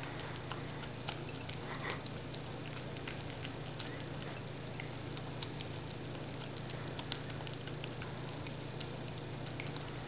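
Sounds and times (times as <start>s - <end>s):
dog licking and chewing food: 0.0s - 10.0s.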